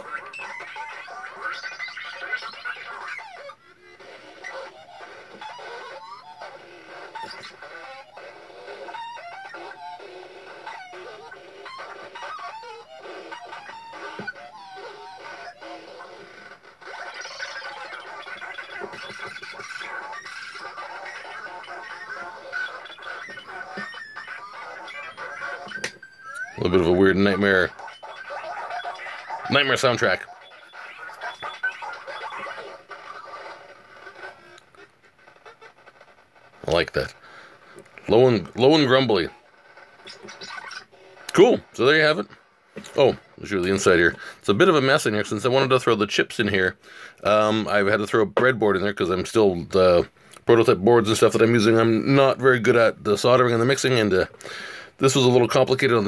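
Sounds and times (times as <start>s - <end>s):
stuttering warbling toy sounds: 0.0s - 46.0s.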